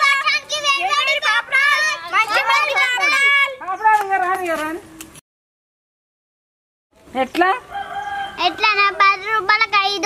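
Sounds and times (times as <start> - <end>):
rooster crowing: 7.6 - 9.2.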